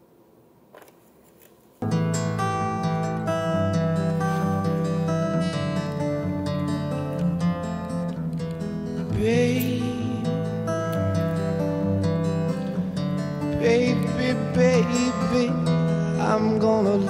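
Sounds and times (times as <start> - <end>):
acoustic guitar music: 1.8 - 17.0
person singing: 9.1 - 10.5, 13.4 - 17.0.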